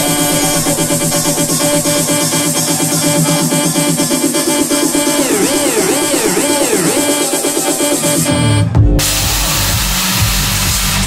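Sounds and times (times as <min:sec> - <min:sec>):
electronic dance music: 0:00.0 - 0:11.0
loud rushing hiss: 0:09.0 - 0:11.0.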